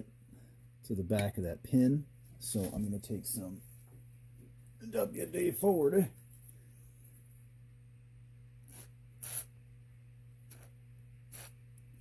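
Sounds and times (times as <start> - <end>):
low steady hum: 0.0 - 12.0
aerosol can spraying: 8.7 - 9.5, 10.5 - 10.7, 11.3 - 11.6.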